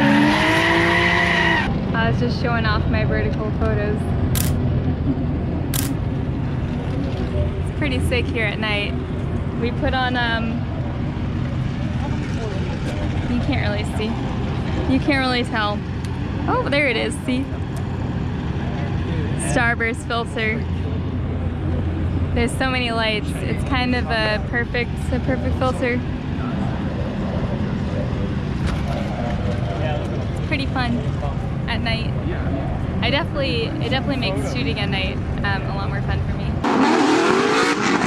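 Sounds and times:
low engine rumble: 1.6s - 36.8s
sharp clicks: 4.4s - 4.6s, 5.7s - 6.0s
voices talking: 9.6s - 17.9s, 18.6s - 36.6s.

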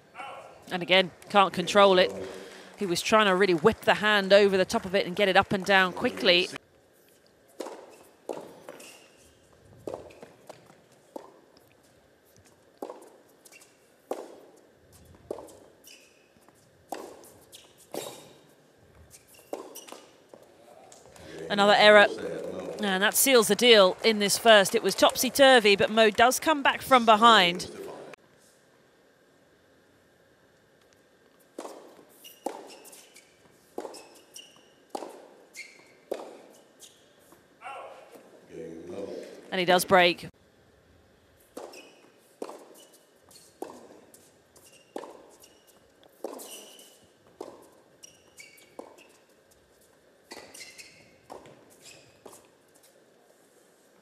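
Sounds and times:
shoe squeaks: 7.1s - 10.4s, 12.8s - 13.9s, 14.9s - 20.4s, 31.6s - 38.1s, 41.6s - 53.0s
racket hitting tennis ball: 7.5s - 9.2s, 14.0s - 14.5s, 16.8s - 18.4s, 19.3s - 20.1s, 31.5s - 35.4s, 36.1s - 36.6s, 41.5s - 45.5s, 46.1s - 47.8s.

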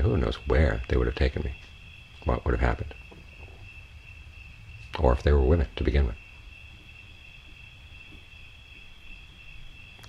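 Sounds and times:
crickets trilling: 0.0s - 10.0s
low background rumble: 0.0s - 10.0s.

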